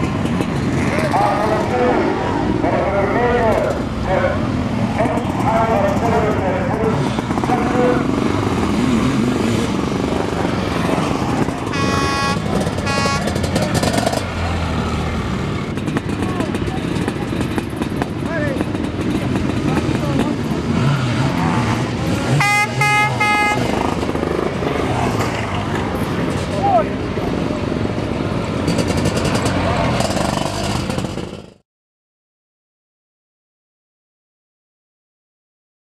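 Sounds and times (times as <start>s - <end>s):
motorcycle engines running hard: 0.0s - 31.6s
horn blasts: 11.6s - 13.6s, 22.3s - 23.8s.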